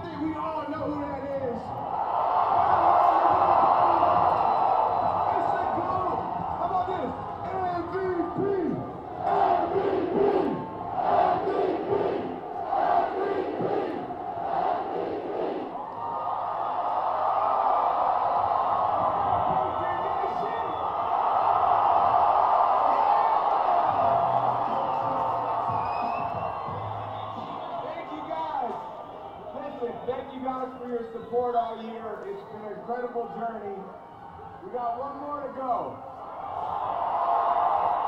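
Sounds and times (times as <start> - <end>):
crowd cheering: 0.0 - 38.0
crowd chanting in rhythm: 9.1 - 15.8.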